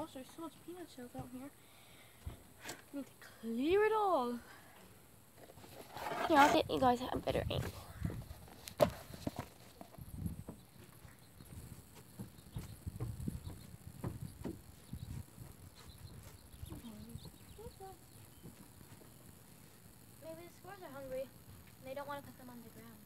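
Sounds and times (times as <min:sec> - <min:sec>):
light knocks and taps: 0:11.5 - 0:14.6.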